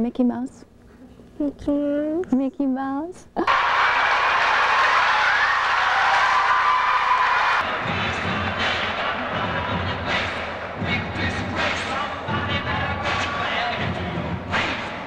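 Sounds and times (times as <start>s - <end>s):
arena crowd din: 3.5s - 15.0s
music: 7.6s - 15.0s.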